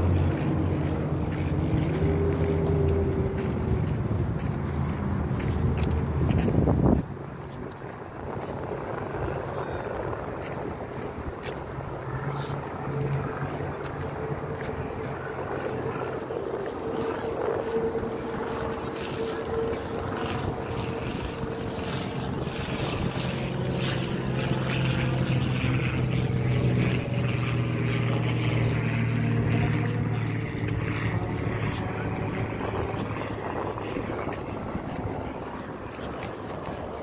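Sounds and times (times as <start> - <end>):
engine drone: 0.0 - 37.0.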